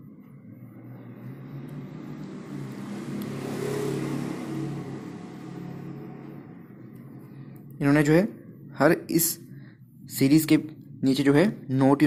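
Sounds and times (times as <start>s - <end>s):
vehicle engine passing: 0.0s - 11.6s.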